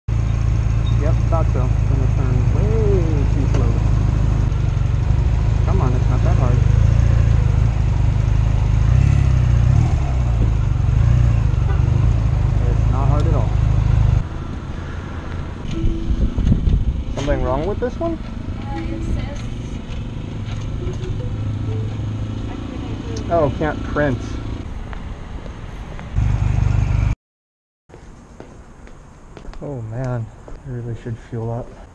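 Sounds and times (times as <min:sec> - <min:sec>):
motorcycle engine running: 0:00.1 - 0:14.3, 0:15.7 - 0:24.6, 0:26.2 - 0:27.1.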